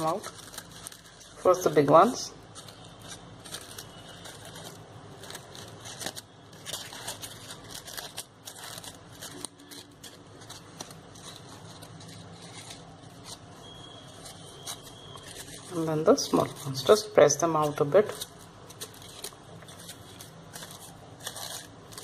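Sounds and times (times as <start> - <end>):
crepe paper rustling: 0.0 - 22.0.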